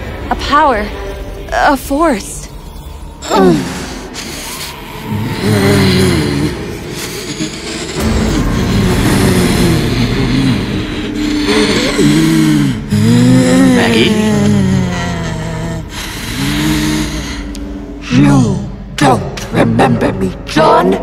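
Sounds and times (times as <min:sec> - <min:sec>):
deep distorted horror groan: 0:02.4 - 0:19.0.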